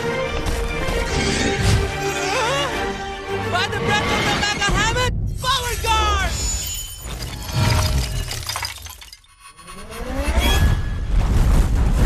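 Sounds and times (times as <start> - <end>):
crystal shattering and tinkling: 6.2 - 9.4.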